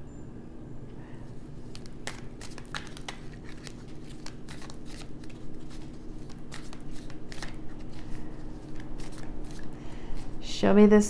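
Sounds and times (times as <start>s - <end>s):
faint steady hum: 0.0s - 11.0s
cards being shuffled: 1.3s - 10.4s.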